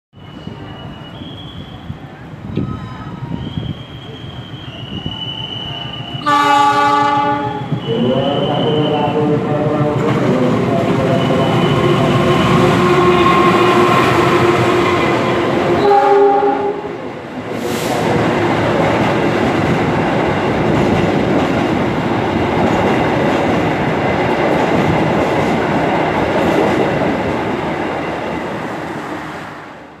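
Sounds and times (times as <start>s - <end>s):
train wheels rattling on rail: 0.2s - 29.7s
locomotive horn: 6.2s - 8.2s, 12.7s - 16.9s.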